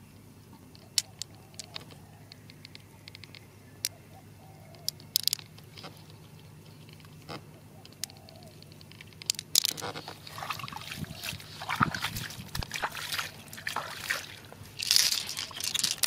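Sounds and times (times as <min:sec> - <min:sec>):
low steady hum: 0:00.0 - 0:16.0
glass marbles clicking: 0:09.0 - 0:09.8, 0:14.8 - 0:16.0.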